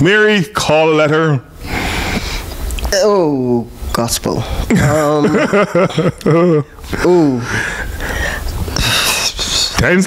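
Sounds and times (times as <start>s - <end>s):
person laughing: 4.7s - 7.7s.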